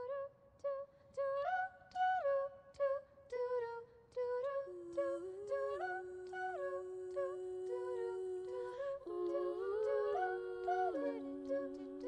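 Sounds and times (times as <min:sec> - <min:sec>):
women singing in close harmony: 0:01.2 - 0:12.0.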